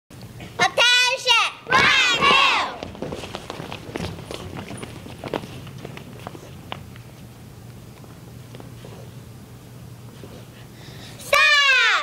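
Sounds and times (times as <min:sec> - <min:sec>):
children calling out: 0:00.7 - 0:02.9, 0:11.2 - 0:12.0
footsteps on wooden stage: 0:01.6 - 0:07.3.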